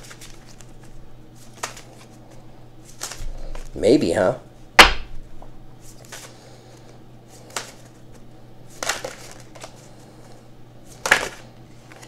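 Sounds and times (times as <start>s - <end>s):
cards shuffling: 0.0s - 3.8s, 5.8s - 12.0s.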